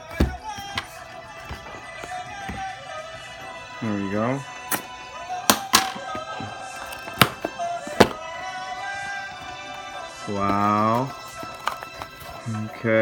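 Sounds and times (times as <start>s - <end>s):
cardboard box handled and opened: 0.0s - 2.8s, 10.3s - 12.8s
background music: 0.0s - 13.0s.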